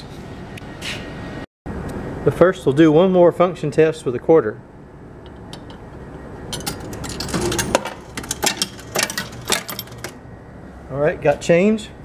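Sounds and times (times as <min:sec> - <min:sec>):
coins clinking in changer: 0:06.5 - 0:10.2.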